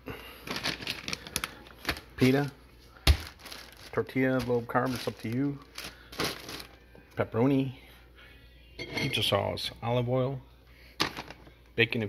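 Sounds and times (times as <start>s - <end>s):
plastic bags crinkling: 0.1s - 6.8s.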